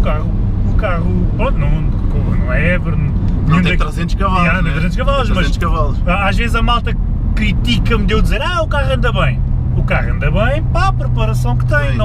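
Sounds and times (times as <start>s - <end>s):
car engine and road noise: 0.0s - 12.0s
voices in a car: 0.0s - 12.0s.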